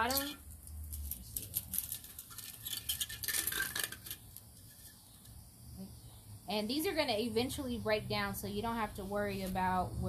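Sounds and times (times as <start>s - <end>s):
pine cones clicking in clay pot: 0.0s - 4.6s.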